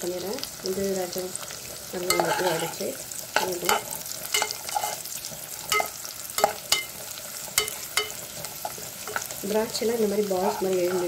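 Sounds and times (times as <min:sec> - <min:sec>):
nuts frying sizzle: 0:00.0 - 0:11.0
metal spoon clinking on pan: 0:02.1 - 0:02.8, 0:03.4 - 0:09.3, 0:10.5 - 0:11.0.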